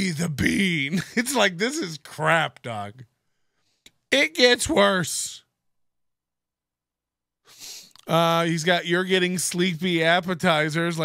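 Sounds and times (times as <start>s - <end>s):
person speaking: 0.0s - 3.1s, 3.9s - 5.5s
breathy intake of breath: 7.5s - 8.0s.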